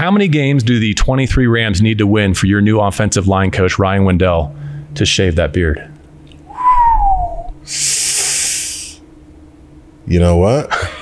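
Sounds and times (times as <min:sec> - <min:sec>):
man's falling whistle: 0:06.5 - 0:07.6
hissing breath through teeth: 0:07.6 - 0:09.0.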